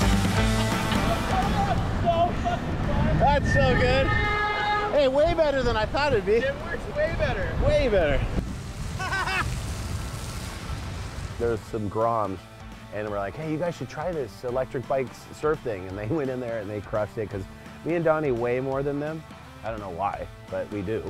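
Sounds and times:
men whooping and laughing: 0.5s - 4.9s, 8.8s - 9.8s
wind on microphone: 1.2s - 11.5s.

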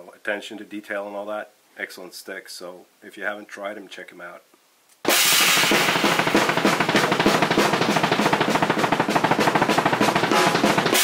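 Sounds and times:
rock drum kit played fast: 5.0s - 11.0s
crashing cymbals: 5.1s - 9.6s.

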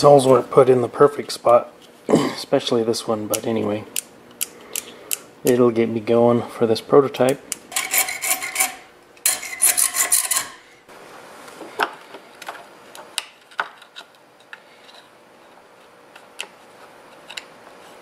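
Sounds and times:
hacksaw rasping strokes: 7.8s - 10.6s.

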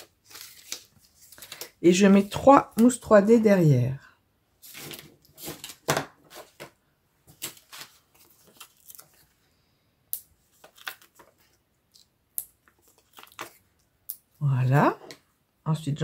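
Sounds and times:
paper rustling and clicks: 0.0s - 3.0s, 4.7s - 9.3s, 10.5s - 13.6s.

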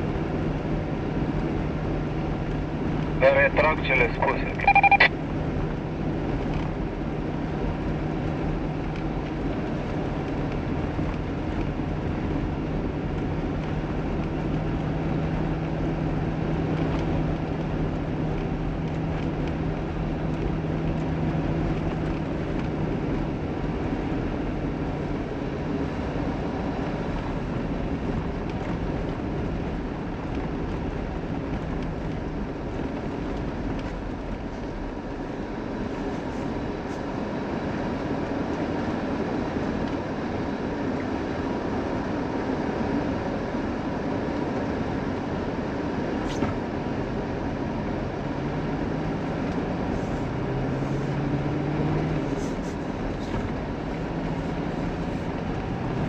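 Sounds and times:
car engine and tyre noise: 0.0s - 56.0s.

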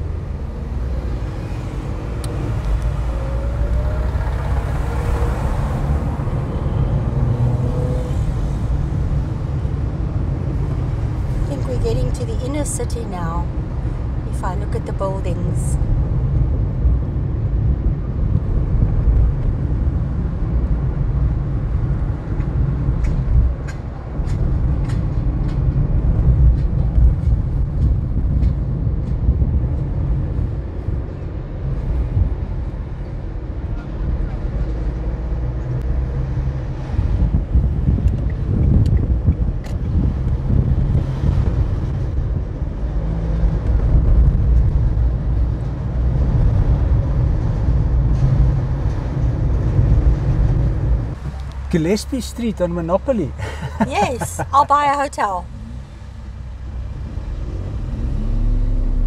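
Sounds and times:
car driving low rumble: 0.0s - 59.0s.

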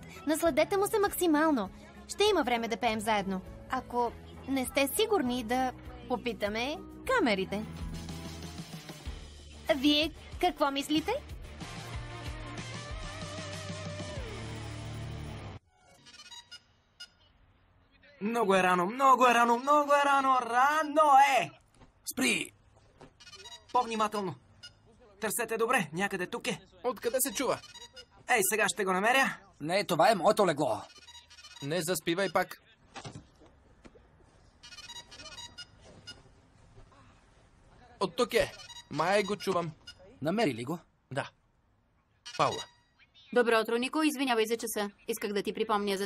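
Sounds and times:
mobile phone ringtone: 15.8s - 17.2s, 23.2s - 24.8s, 27.0s - 28.1s, 30.8s - 32.6s, 34.6s - 36.2s, 38.5s - 40.0s, 42.3s - 42.9s.

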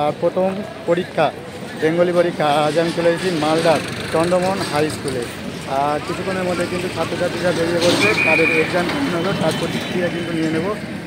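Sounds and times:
man talking: 0.0s - 10.8s.

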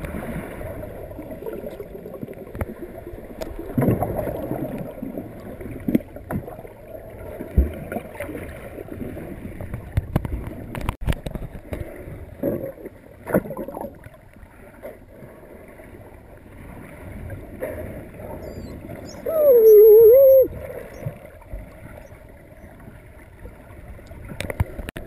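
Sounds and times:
muffled underwater noise: 18.3s - 21.1s
wavering whistle-like call: 18.4s - 21.0s.

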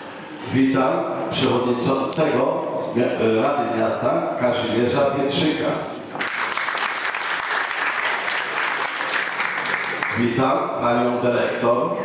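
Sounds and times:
audience applauding: 6.2s - 10.3s.

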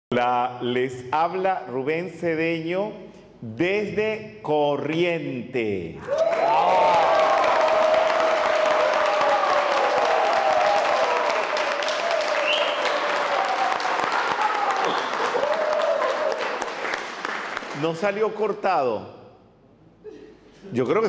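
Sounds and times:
audience applauding: 6.1s - 18.2s.

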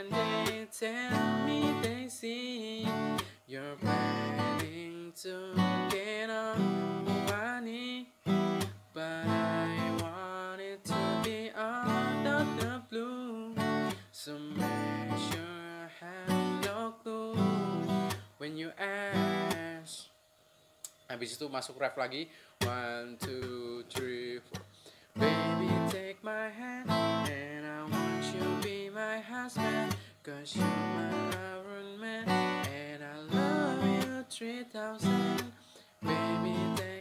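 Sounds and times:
man singing: 0.0s - 8.2s, 8.9s - 20.1s, 22.6s - 24.6s, 25.2s - 37.0s
acoustic guitar strumming: 0.0s - 20.0s, 22.2s - 37.0s.

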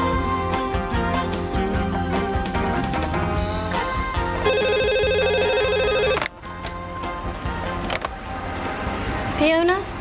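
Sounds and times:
background music: 0.0s - 10.0s
telephone ringer warbling trill: 4.4s - 6.2s.

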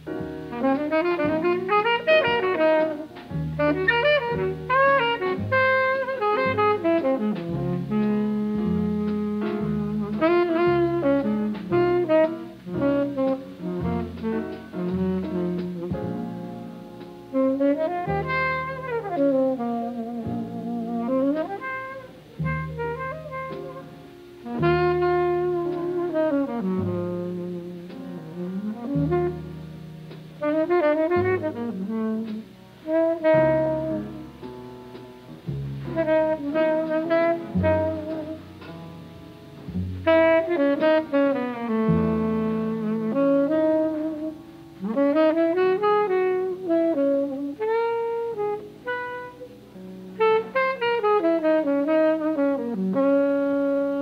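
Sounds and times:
string bass: 0.0s - 45.4s
sustained piano chords: 0.0s - 54.0s
tenor saxophone ballad melody: 0.0s - 54.0s.

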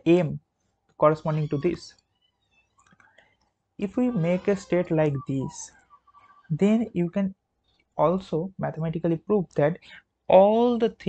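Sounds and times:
man speaking: 0.0s - 0.4s, 1.0s - 2.0s, 3.8s - 5.7s, 6.5s - 7.4s, 8.0s - 11.0s
faint clicks: 2.7s - 3.6s.

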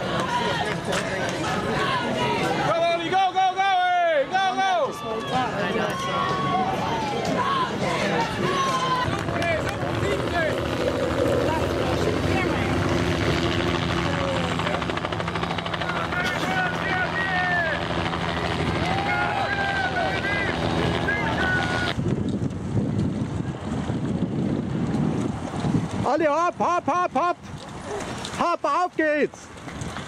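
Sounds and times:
spectators shouting: 0.0s - 22.0s
crowd noise: 0.0s - 28.6s
wind buffeting microphone: 5.3s - 28.4s, 29.4s - 30.0s
engine hum: 7.0s - 25.6s.

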